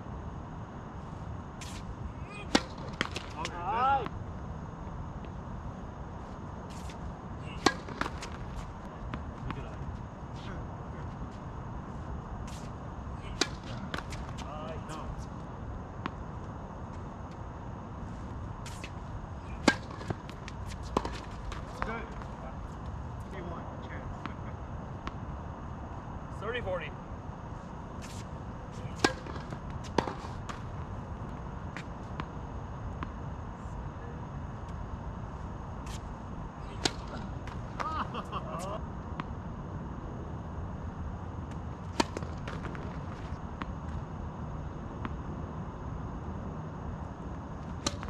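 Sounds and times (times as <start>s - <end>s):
steady low rumble: 0.0s - 48.0s
tennis racquets striking ball: 1.6s - 3.8s, 6.7s - 9.5s, 13.3s - 15.0s, 18.6s - 22.3s, 28.0s - 32.3s, 35.9s - 38.0s, 41.5s - 43.8s, 47.6s - 48.0s.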